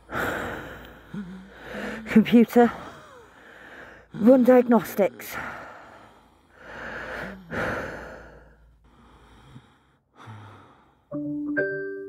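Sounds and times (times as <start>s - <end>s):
person breathing heavily: 0.0s - 11.1s.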